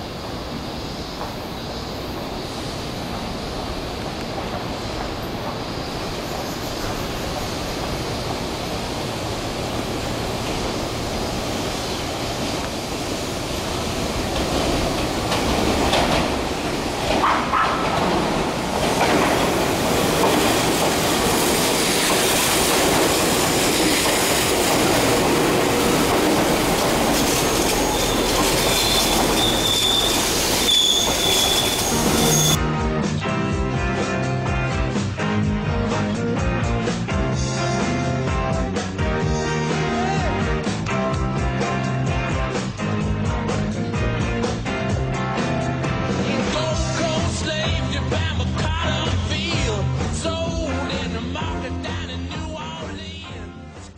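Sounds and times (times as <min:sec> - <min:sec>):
electric train passing: 0:00.0 - 0:32.6
wheel clatter over rails: 0:12.2 - 0:32.6
high wheel squeal: 0:27.0 - 0:32.6.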